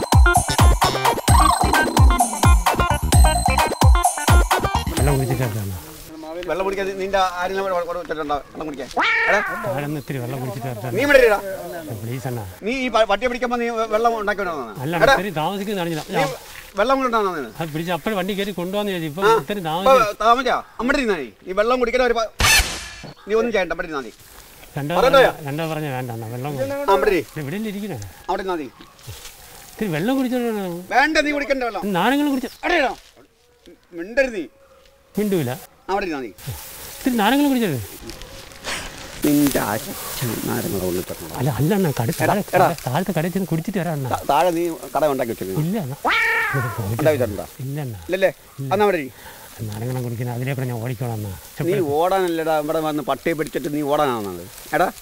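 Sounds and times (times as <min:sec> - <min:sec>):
man talking: 0:04.8 - 0:22.2, 0:24.7 - 0:28.7, 0:29.8 - 0:33.0, 0:35.2 - 0:38.2, 0:39.2 - 0:55.0
high-pitched drawn-out cry: 0:09.0 - 0:09.8, 0:46.0 - 0:47.1.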